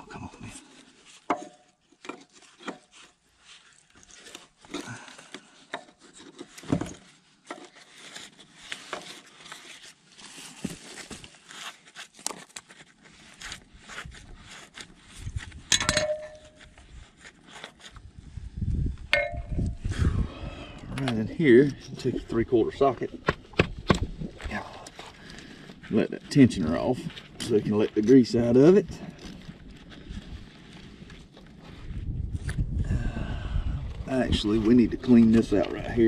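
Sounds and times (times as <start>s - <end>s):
ringing metal clink: 15.7s - 16.6s, 19.1s - 19.8s
hand tools clinking on metal: 15.7s - 16.7s.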